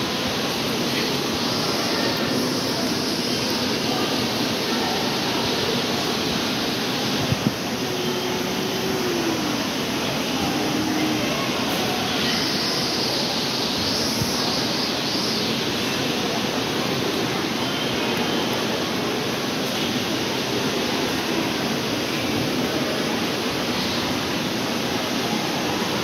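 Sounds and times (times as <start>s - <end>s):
busy public hall background noise: 0.0s - 26.0s.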